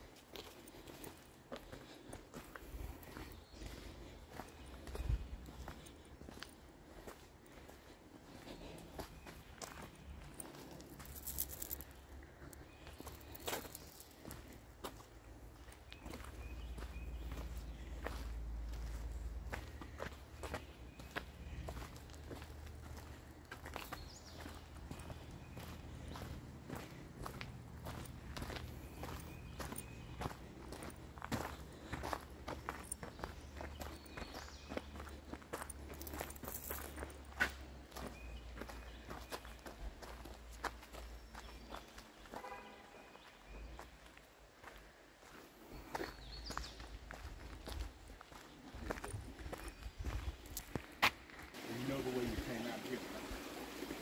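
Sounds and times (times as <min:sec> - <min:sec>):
footsteps crunching on gravel: 0:00.1 - 0:53.8.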